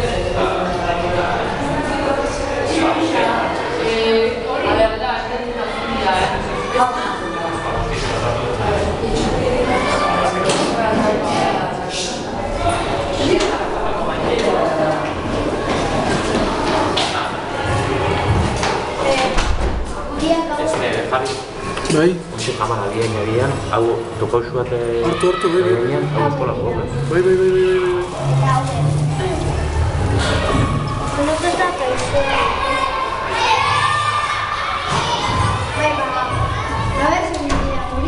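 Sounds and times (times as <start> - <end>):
children shouting and chattering: 0.0 - 38.0
din of many voices: 0.0 - 38.0.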